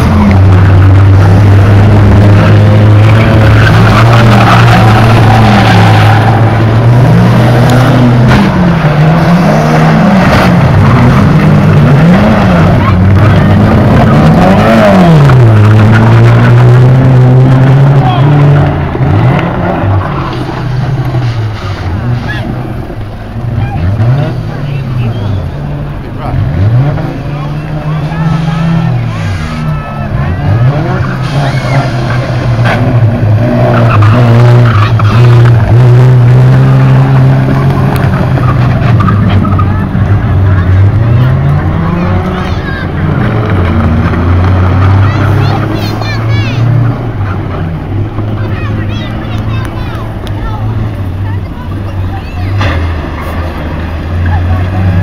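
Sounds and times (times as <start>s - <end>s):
racing car engines revving: 0.0s - 55.0s.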